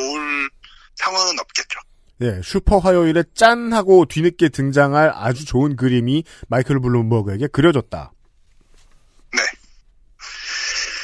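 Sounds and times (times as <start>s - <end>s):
person speaking: 0.0s - 8.2s, 9.3s - 10.5s.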